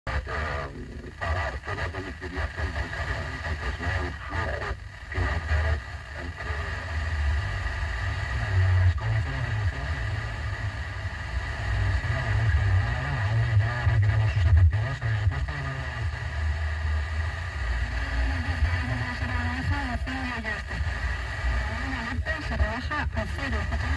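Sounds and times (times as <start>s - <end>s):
faint radio talk: 0.1s - 23.9s
radio static hiss: 0.1s - 23.9s.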